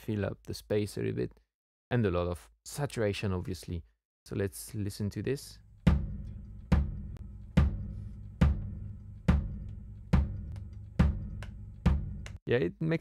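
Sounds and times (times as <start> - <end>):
saturated kick drum beat: 5.8 - 12.4.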